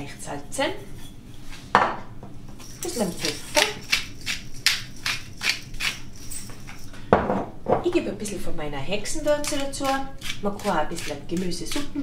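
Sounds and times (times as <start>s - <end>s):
pepper mill grinding: 2.6s - 7.0s, 9.1s - 12.0s.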